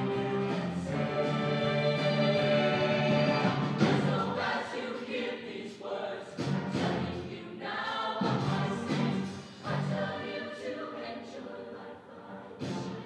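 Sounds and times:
instrumental accompaniment: 0.0s - 4.4s
choir singing in harmony: 0.0s - 13.0s.

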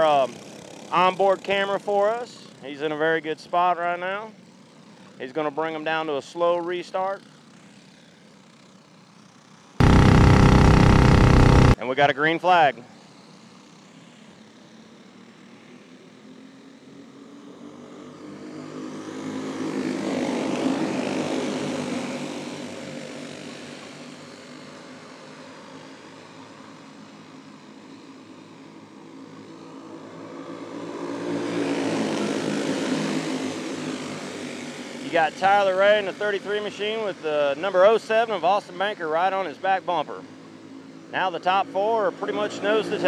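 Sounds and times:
kart engines racing: 42.0s - 43.0s.

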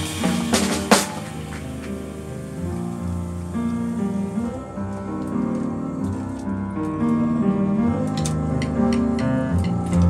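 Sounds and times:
soft steady hiss: 0.0s - 5.8s
grand piano: 0.0s - 10.0s.

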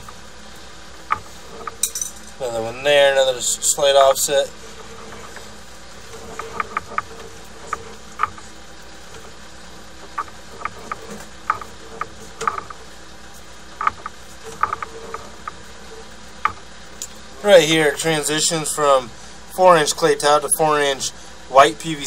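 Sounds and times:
camera cable hum: 0.0s - 17.6s.

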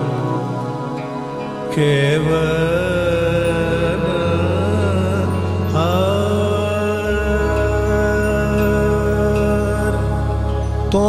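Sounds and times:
low sustained notes: 0.0s - 11.0s
man singing ornamented notes: 0.0s - 11.0s.

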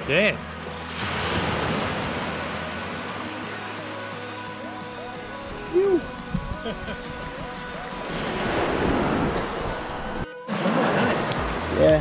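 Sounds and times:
faint background music: 0.0s - 12.0s
surf washing on beach: 0.7s - 4.3s, 7.2s - 12.0s.

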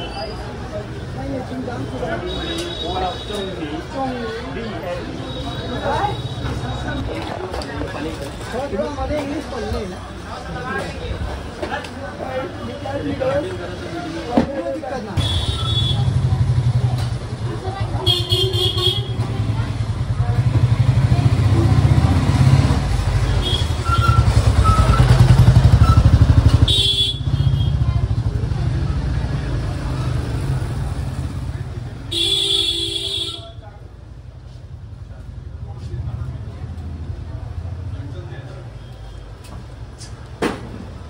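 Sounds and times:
motorcycle engine chugging: 23.4s - 29.0s
horn beeps: 23.5s - 27.8s.

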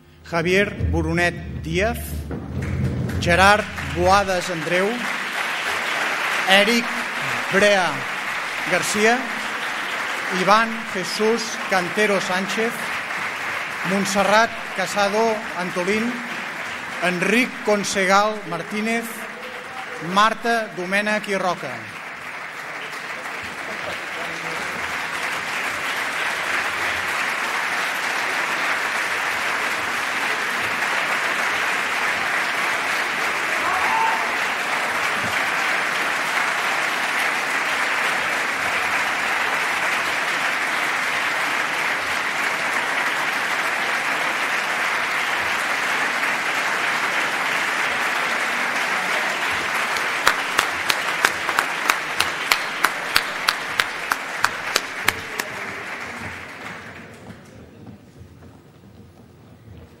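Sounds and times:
rhythmic clapping in unison: 0.0s - 57.5s
large audience applauding: 0.0s - 57.6s.

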